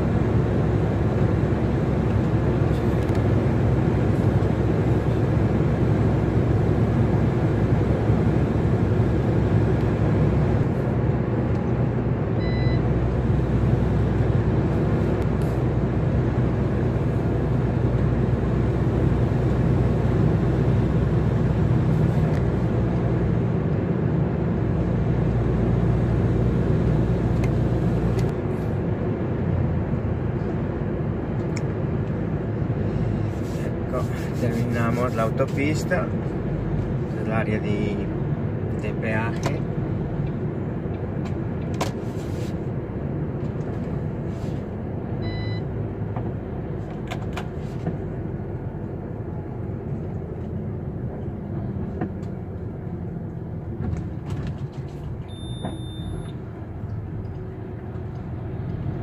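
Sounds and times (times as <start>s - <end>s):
truck engine and road noise: 0.0s - 59.0s.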